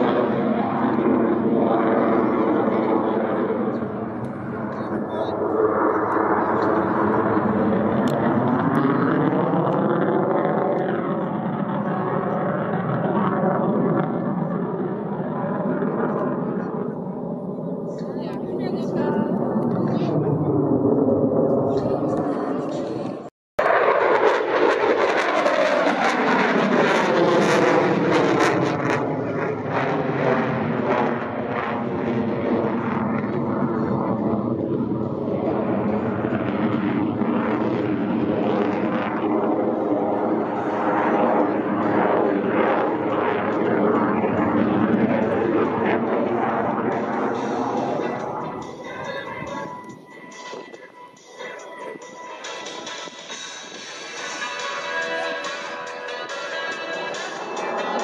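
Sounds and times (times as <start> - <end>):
fighter jet roaring overhead: 0.0 - 58.0.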